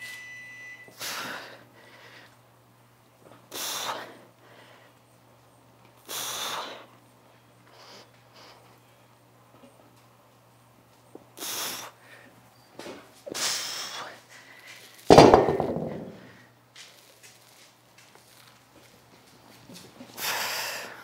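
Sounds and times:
heavy thud: 0:15.1 - 0:16.2.

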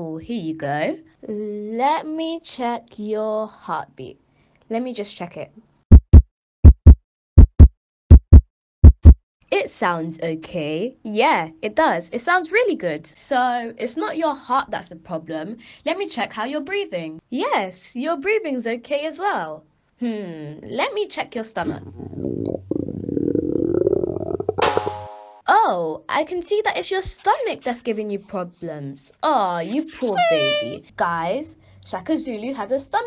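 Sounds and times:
heartbeat through stethoscope: 0:05.9 - 0:09.2
low gurgling stomach rumble: 0:21.7 - 0:24.6.

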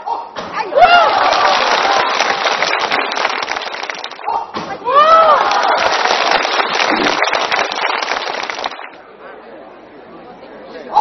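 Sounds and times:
audience cheering: 0:00.7 - 0:08.9
audience clapping: 0:00.9 - 0:04.4, 0:05.2 - 0:09.0.

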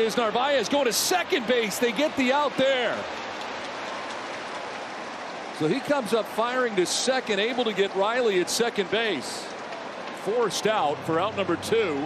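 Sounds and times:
stadium crowd cheering and clapping: 0:00.0 - 0:12.0.

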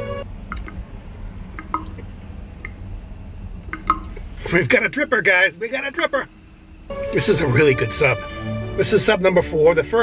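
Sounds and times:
low steady hum: 0:00.0 - 0:10.0
wet mouth clicks and smacks: 0:00.5 - 0:00.8, 0:01.6 - 0:02.8, 0:03.7 - 0:04.2.

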